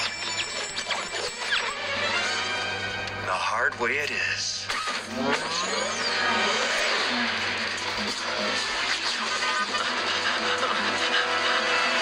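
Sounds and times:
film soundtrack music: 0.0s - 12.0s.

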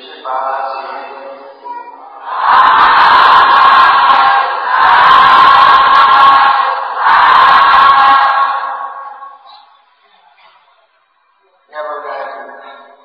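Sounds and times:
congregation calling out in unison: 2.0s - 9.7s.

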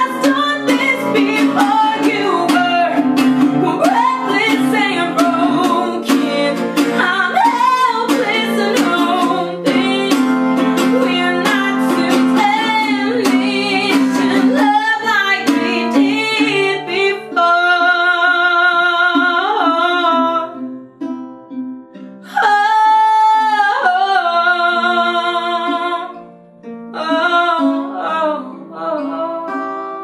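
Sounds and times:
woman singing: 0.0s - 20.7s, 22.2s - 26.2s, 26.9s - 30.0s
strummed acoustic guitar: 0.0s - 30.0s.

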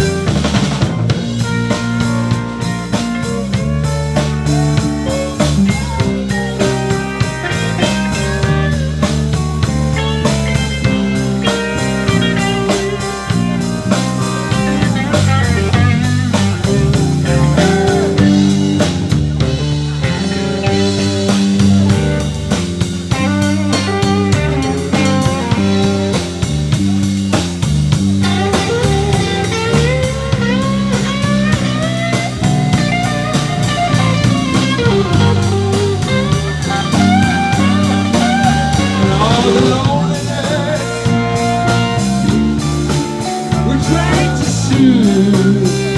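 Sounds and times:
bass guitar: 0.0s - 45.9s
drum kit: 0.0s - 45.9s
electric guitar with bent notes: 0.0s - 45.9s.

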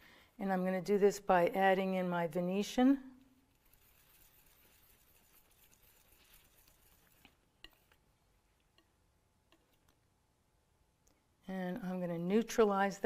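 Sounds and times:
palette knife scraping paint: 3.2s - 8.9s.

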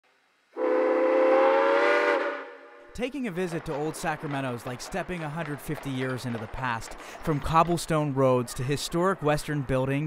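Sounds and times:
steam whistle blast: 0.6s - 2.9s.

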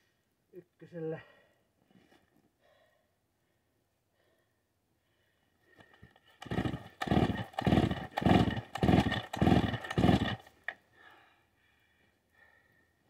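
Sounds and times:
engine turning over briefly: 5.8s - 10.5s
chainsaw recoil starter pulls: 5.8s - 10.8s.

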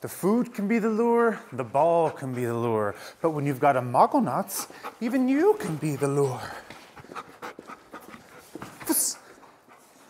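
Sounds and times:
dog panting: 0.7s - 10.0s.

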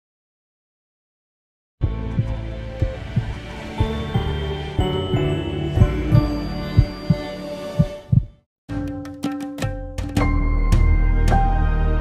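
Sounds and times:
heartbeat thumping: 1.8s - 4.3s, 5.1s - 8.4s.

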